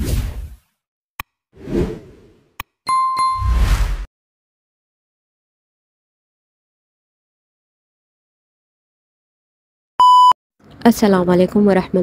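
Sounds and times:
whoosh: 1.6 - 2.4, 3.4 - 4.1.

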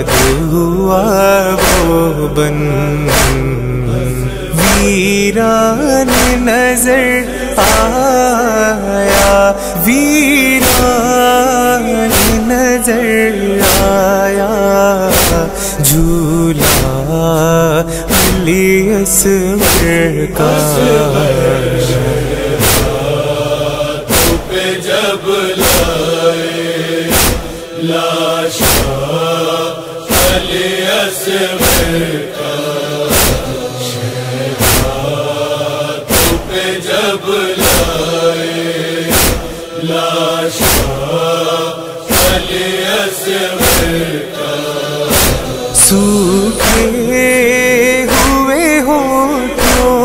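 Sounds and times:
male chorus chanting: 0.0 - 50.0.

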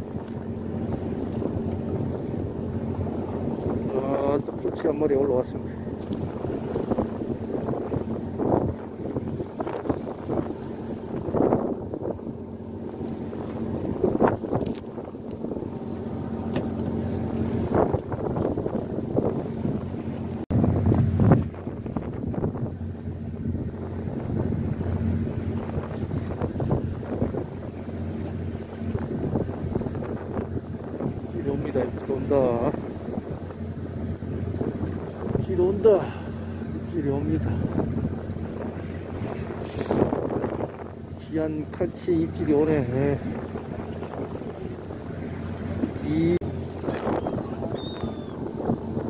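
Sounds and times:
boat engine running: 0.0 - 49.0
wind on microphone: 0.0 - 49.0.

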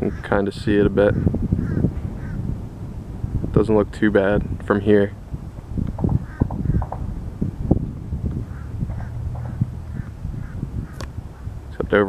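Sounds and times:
wind rumble on microphone: 0.0 - 12.0
faint bird calls: 1.0 - 2.4, 5.9 - 7.2, 8.4 - 11.6.

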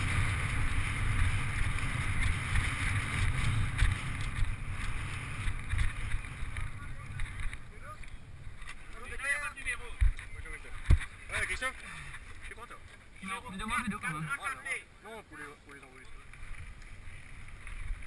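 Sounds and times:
wind buffeting microphone: 0.0 - 8.7
bike rolling over grass and dirt: 0.0 - 14.7, 15.4 - 18.0
voices: 6.4 - 16.4.

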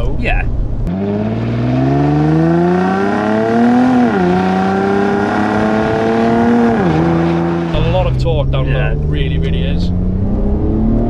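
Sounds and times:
car engine accelerating hard: 0.8 - 11.0.

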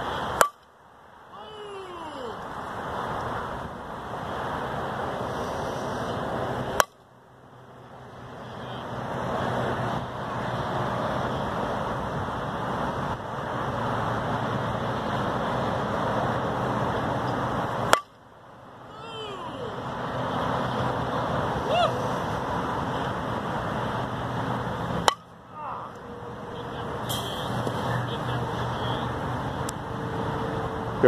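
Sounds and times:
bat cracking a ball: 0.4 - 0.7, 17.9 - 18.2, 25.0 - 25.3.

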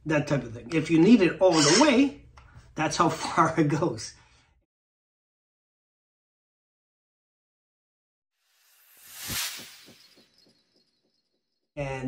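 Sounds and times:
whoosh with echoing pulses: 8.6 - 11.1.

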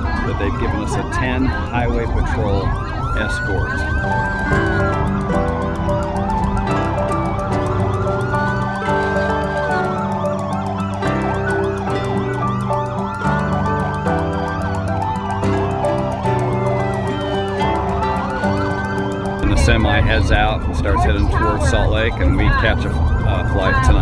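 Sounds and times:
background music with steady beat: 0.0 - 24.0
police siren wailing: 0.0 - 24.0.

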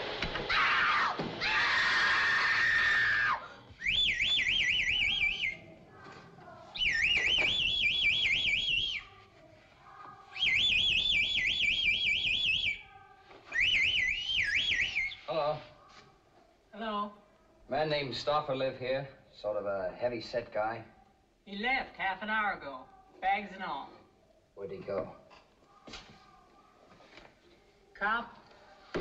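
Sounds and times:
high whistle trilling: 3.0 - 5.6, 6.8 - 9.1, 10.3 - 12.9, 13.5 - 15.4.

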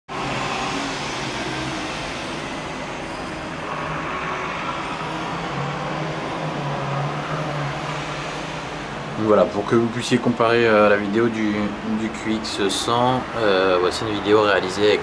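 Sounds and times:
hiss of cars on street: 0.1 - 15.0.

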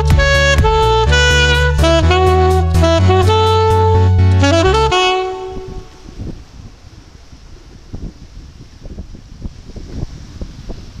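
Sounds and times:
saxophone note: 0.0 - 6.3.

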